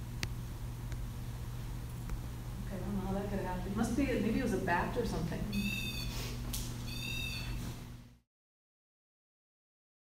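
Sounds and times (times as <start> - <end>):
low steady hum: 0.0 - 8.2.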